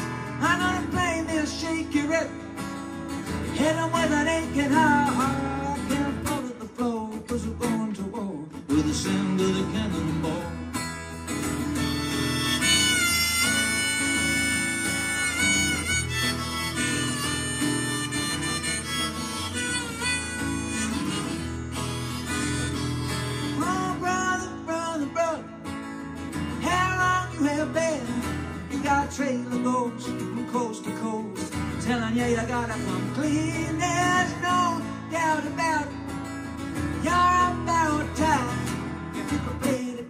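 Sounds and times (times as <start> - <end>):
strummed acoustic guitar: 0.0 - 40.0
harmonica playing: 11.2 - 24.5.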